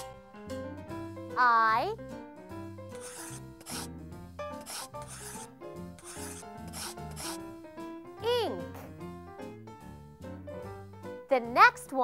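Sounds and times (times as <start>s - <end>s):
light background music: 0.0s - 12.0s
pen scratching on paper: 2.9s - 3.9s, 4.6s - 7.4s.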